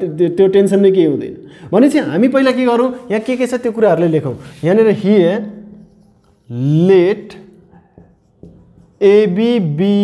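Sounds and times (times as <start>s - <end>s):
marker pen writing on whiteboard: 2.4s - 10.0s.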